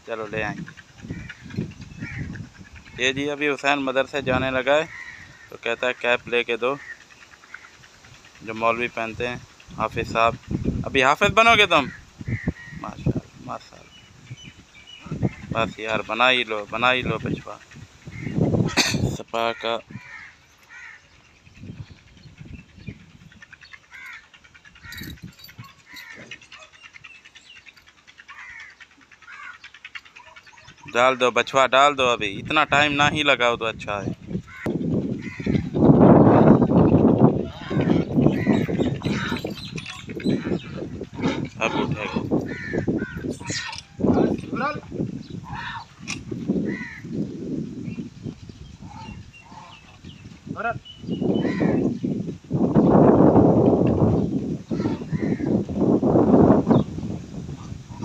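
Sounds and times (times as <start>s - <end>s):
birds chirping: 0.0s - 58.0s
indistinct voices talking: 21.5s - 47.1s.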